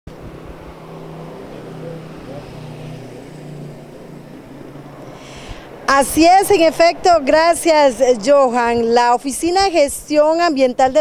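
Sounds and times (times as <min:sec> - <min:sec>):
passing vehicle engines: 0:00.1 - 0:11.0.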